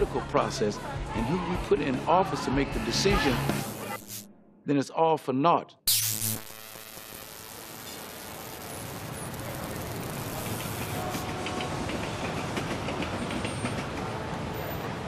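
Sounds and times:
rushing street traffic: 0:08.0 - 0:15.0.

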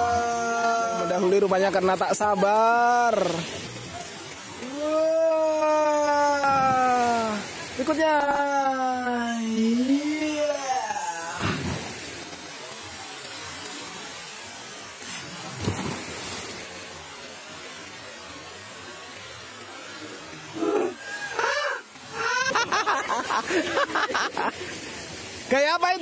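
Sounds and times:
steady hiss: 0:00.0 - 0:26.0
splash into water: 0:11.3 - 0:17.0.

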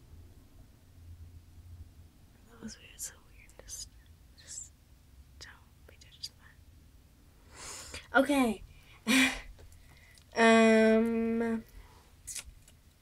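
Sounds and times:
girl whispering: 0:02.4 - 0:04.8, 0:05.4 - 0:06.6, 0:10.4 - 0:11.7.

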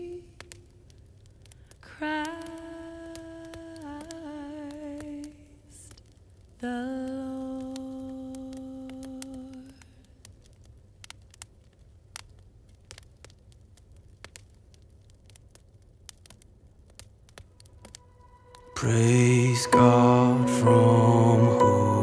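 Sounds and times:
wood fire crackling: 0:00.0 - 0:22.0
person humming a long note: 0:18.1 - 0:22.0.

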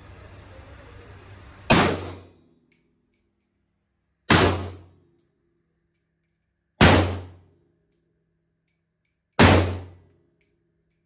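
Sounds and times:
gunshot echoing indoors: 0:01.7 - 0:02.5, 0:04.2 - 0:05.2, 0:06.8 - 0:07.7, 0:09.3 - 0:10.1.

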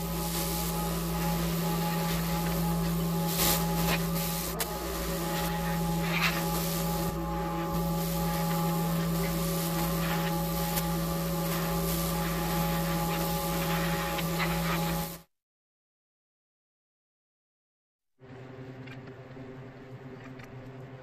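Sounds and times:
mechanical hum: 0:00.0 - 0:15.3, 0:18.2 - 0:21.0.

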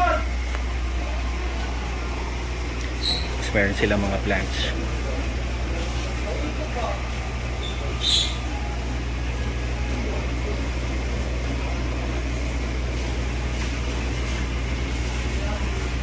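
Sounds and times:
distant voices murmuring: 0:00.0 - 0:16.0
steady low hum: 0:00.0 - 0:16.0
high chirp: 0:07.6 - 0:08.7.

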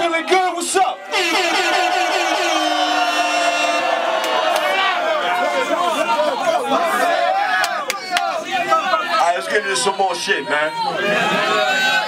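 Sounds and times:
voices shouting: 0:00.0 - 0:12.0.

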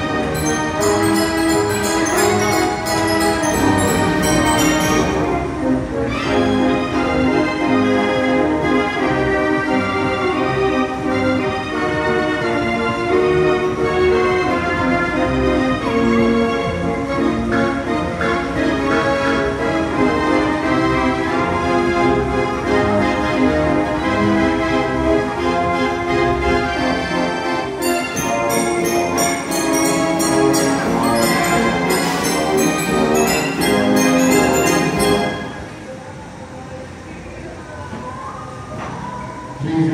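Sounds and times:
fairground organ music: 0:00.0 - 0:36.6.

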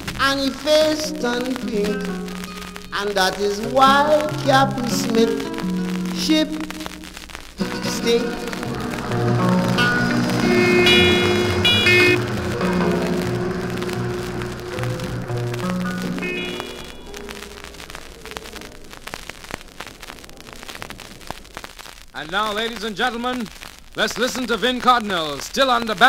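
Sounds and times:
audience applause: 0:07.6 - 0:19.0
calypso band playing: 0:09.0 - 0:16.7.

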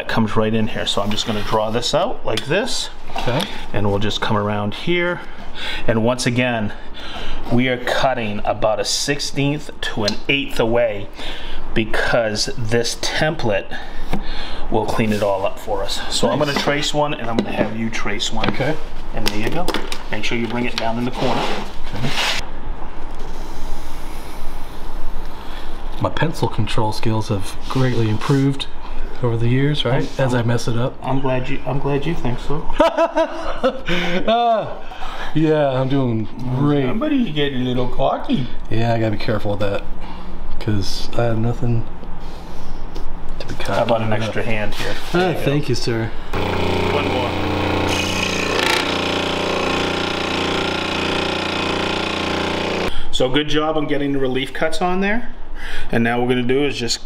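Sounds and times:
scroll saw humming: 0:46.3 - 0:52.9
saw cutting hiss: 0:46.4 - 0:52.9.

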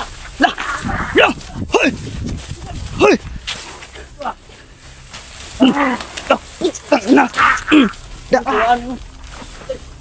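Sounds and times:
man calling out: 0:00.4 - 0:02.0, 0:02.6 - 0:03.3, 0:05.6 - 0:09.0.

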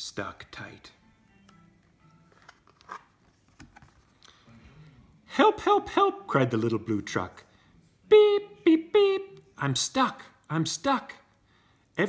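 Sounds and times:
cardboard book page turning: 0:02.0 - 0:04.2.

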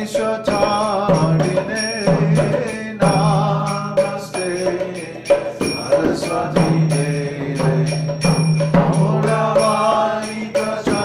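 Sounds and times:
man chanting in singing voice: 0:00.0 - 0:08.3.

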